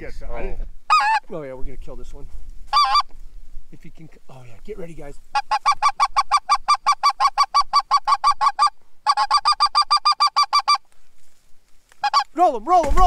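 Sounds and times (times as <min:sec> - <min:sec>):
goose call clucks: 0:00.9 - 0:01.3, 0:02.7 - 0:03.1, 0:05.3 - 0:10.9, 0:12.0 - 0:12.4.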